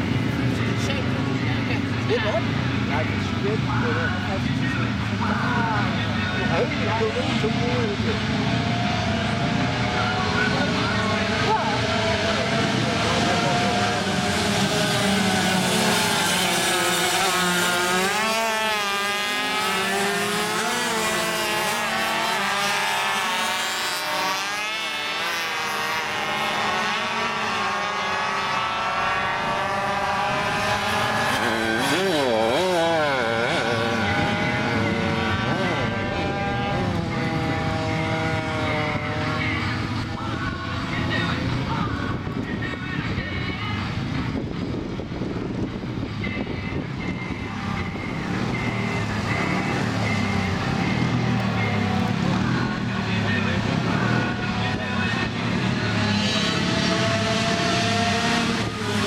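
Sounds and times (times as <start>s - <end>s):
racing motorcycles passing: 0.0s - 59.0s.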